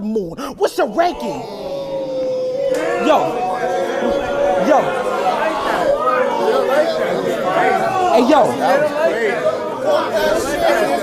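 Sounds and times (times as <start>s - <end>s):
men talking over one another: 0.6s - 11.0s.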